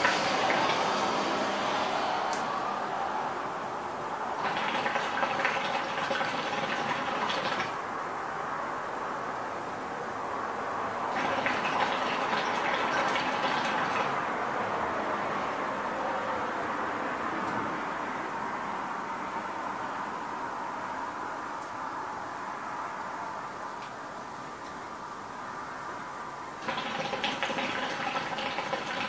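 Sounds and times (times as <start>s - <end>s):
hookah water bubbling: 0.0s - 1.3s, 4.4s - 7.8s, 11.1s - 14.4s, 26.6s - 29.0s.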